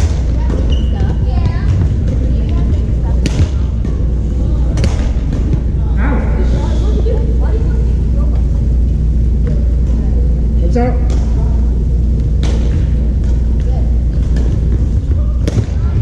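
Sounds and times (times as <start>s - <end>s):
distant voices of players: 0.0s - 16.0s
low rumble: 0.0s - 16.0s
rackets hitting shuttlecocks: 12.2s - 15.9s.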